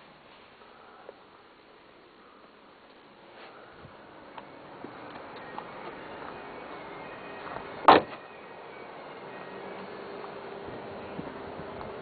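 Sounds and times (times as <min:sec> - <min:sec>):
car door slamming: 0:07.5 - 0:08.2.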